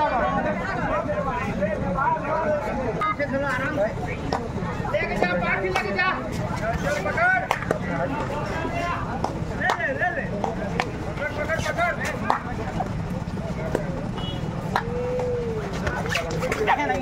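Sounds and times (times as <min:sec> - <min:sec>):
crowd talking and shouting: 0:00.0 - 0:17.0.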